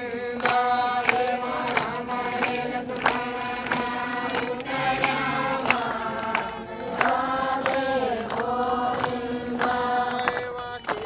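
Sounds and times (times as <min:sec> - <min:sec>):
group chanting in unison: 0:00.0 - 0:11.0
hand claps keeping time: 0:00.0 - 0:11.0.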